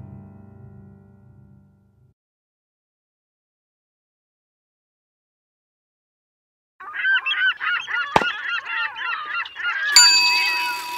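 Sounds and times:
flock of birds calling: 6.8s - 10.9s
ringing ding: 9.9s - 10.9s.

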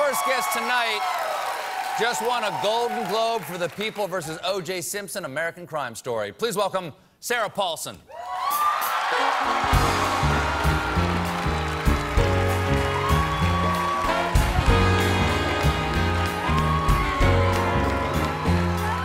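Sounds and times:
audience applause: 0.0s - 4.4s, 8.3s - 19.0s
band playing upbeat music: 9.1s - 19.0s.

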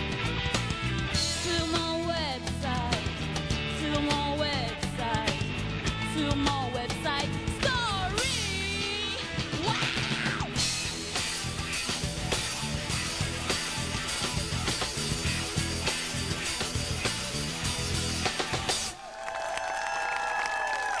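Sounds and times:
bass guitar: 0.0s - 19.0s
drum kit beat: 0.0s - 19.0s
electric guitars: 0.0s - 19.0s.

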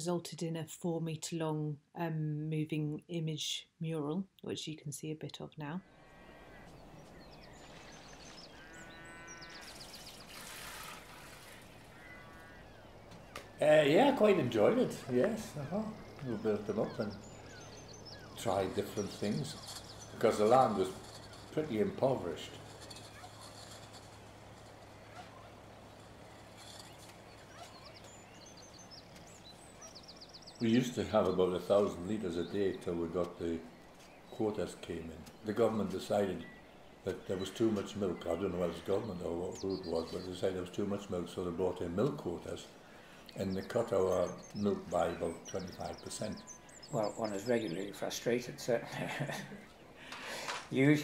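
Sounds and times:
low steady hum: 5.3s - 51.0s
faint bird calls: 5.8s - 51.0s
background hiss: 5.9s - 51.0s
sheep bleating: 8.2s - 9.8s, 11.3s - 13.0s.

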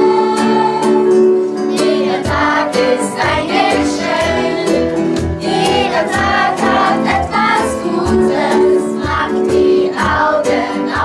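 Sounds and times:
choir singing: 0.0s - 11.0s
strummed acoustic guitar: 0.0s - 11.0s.

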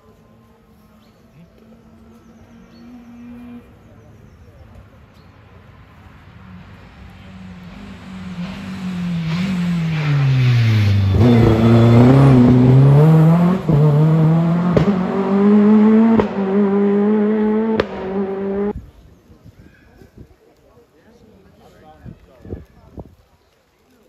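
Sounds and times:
rally car engine revving: 7.3s - 18.8s
sharp cracks: 17.6s - 18.6s.

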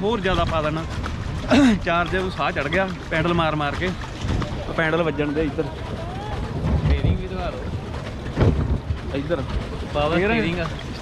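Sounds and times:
water washing along boat hull: 0.0s - 11.0s
wind rumbling on microphone: 0.0s - 11.0s.

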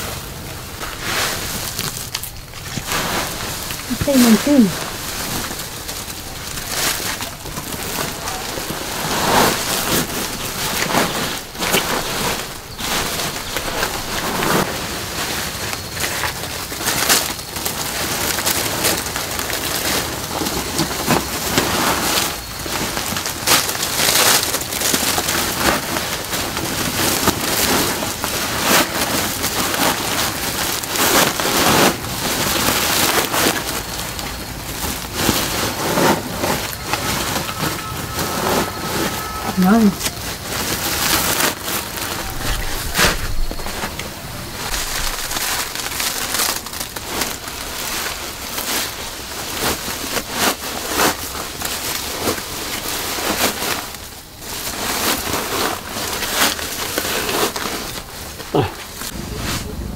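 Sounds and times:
plastic sack crinkling: 0.0s - 59.9s
tea leaves rustling: 0.0s - 59.9s.

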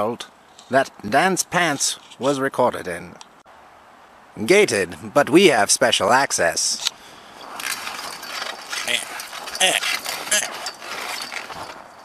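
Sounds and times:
chain-link gate rattling: 7.4s - 12.0s.

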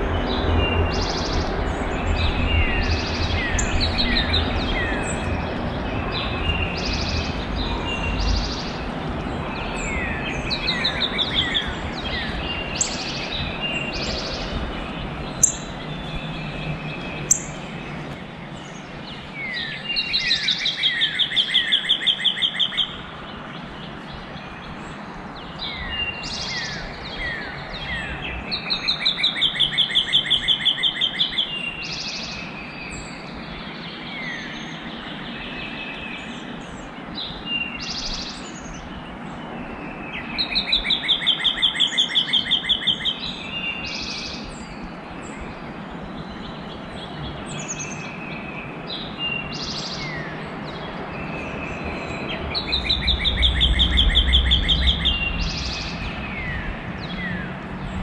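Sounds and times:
songbird singing with trill: 0.0s - 58.0s.

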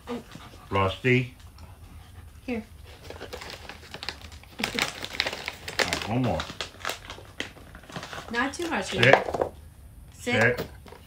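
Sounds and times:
dog clicks and rustles: 2.9s - 9.2s.

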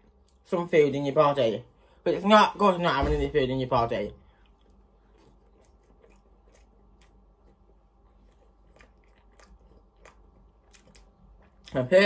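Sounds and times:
low steady hum: 0.0s - 12.0s
chewing with mouth clicks: 4.2s - 11.9s.

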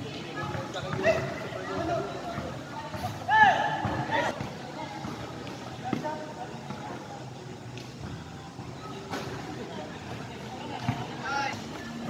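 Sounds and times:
spectators chatting: 0.0s - 12.0s.

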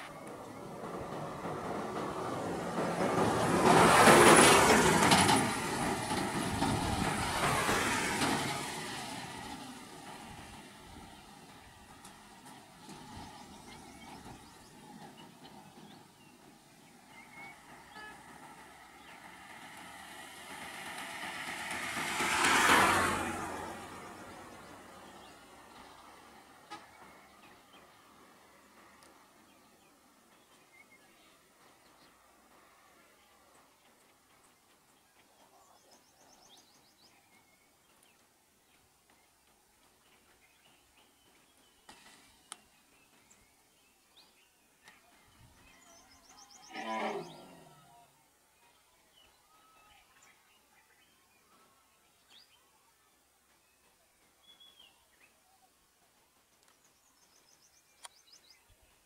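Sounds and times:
vehicles passing by: 0.0s - 48.5s.

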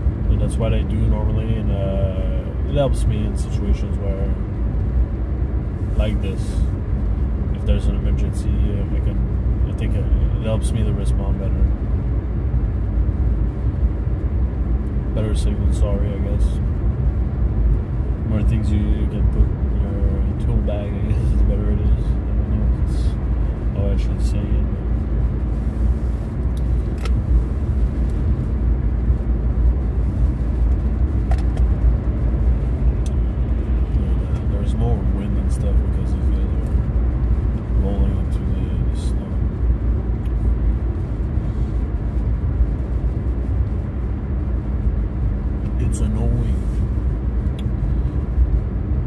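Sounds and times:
road and engine rumble in car: 0.0s - 49.0s.

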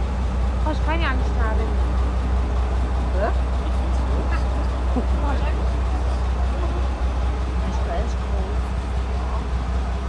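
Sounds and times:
tracked vehicle engine rumbling: 0.0s - 10.0s.

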